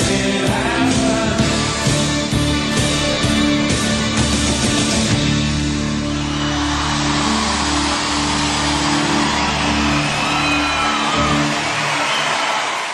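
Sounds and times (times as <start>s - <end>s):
live pop band playing: 0.0s - 12.4s
crowd cheering and applauding: 1.4s - 12.9s
shrill whistles from audience: 6.1s - 12.9s.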